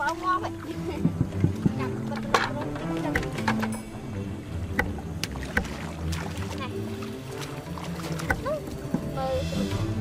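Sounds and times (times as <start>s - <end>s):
background music: 0.0s - 10.0s
muddy water splashing: 0.0s - 10.0s.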